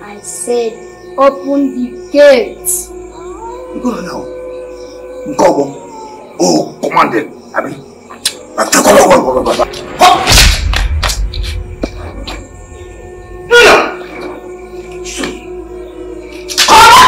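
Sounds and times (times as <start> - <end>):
held music drone: 10.7 - 17.0.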